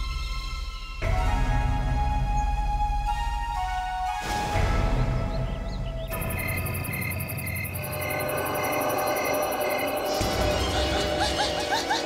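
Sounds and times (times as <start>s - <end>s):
fast high pulsing pattern: 6.2s - 10.4s.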